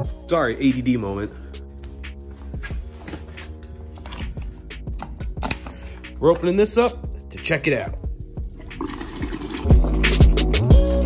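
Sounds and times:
background music with beat: 0.0s - 11.0s
water draining into plastic bucket: 8.6s - 9.9s.

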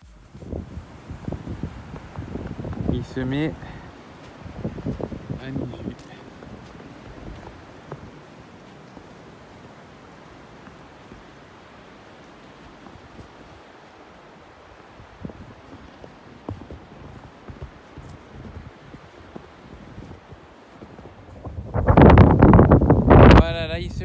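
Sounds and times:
footsteps on snow: 0.0s - 23.3s
wind on microphone: 0.0s - 24.0s.

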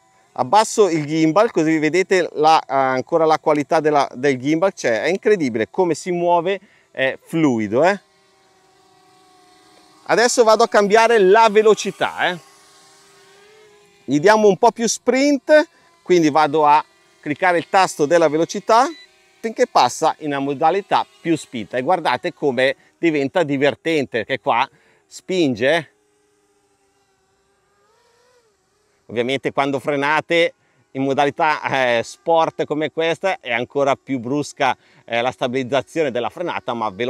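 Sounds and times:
faint buzz of drone propellers: 0.0s - 37.0s.

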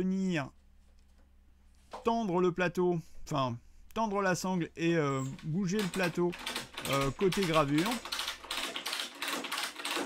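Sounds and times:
ratchet pawl clicking rapidly: 5.8s - 10.0s.

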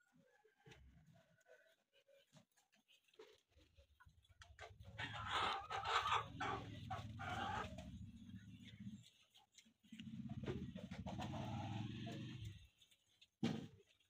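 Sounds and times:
chickens clucking: 0.0s - 13.9s.

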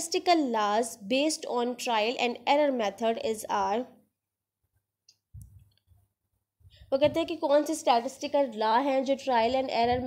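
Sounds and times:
woman speaking: 0.0s - 4.0s, 6.9s - 10.0s
soft low thump: 7.0s - 7.3s.

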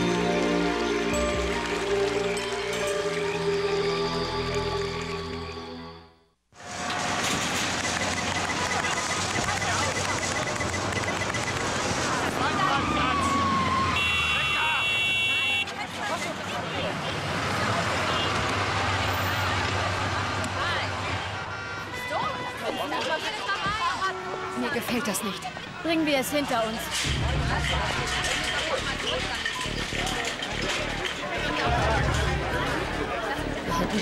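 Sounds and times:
cars moving: 6.6s - 34.0s
car horn honking: 14.0s - 15.8s, 21.1s - 25.2s.

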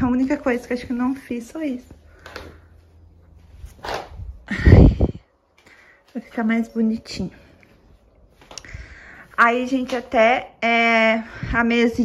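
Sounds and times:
curtain fabric rustling: 0.2s - 4.8s.

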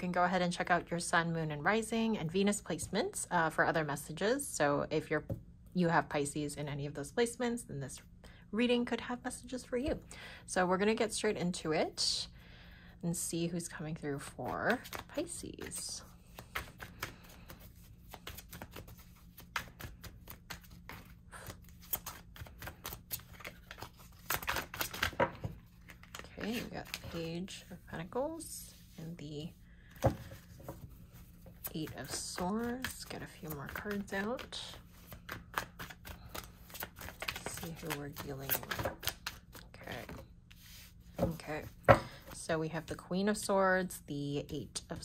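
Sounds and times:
cards being shuffled: 14.2s - 27.8s, 29.9s - 42.4s.

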